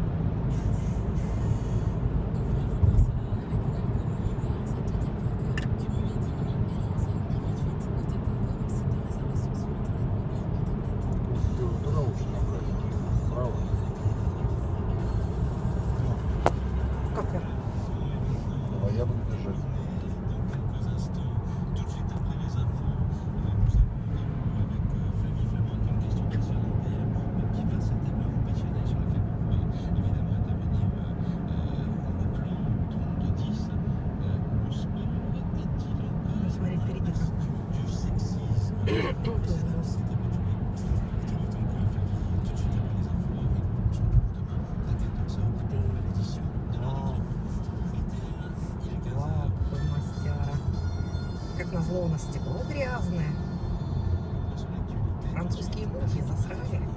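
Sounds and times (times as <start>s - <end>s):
car engine and tyre drone: 0.0s - 56.9s.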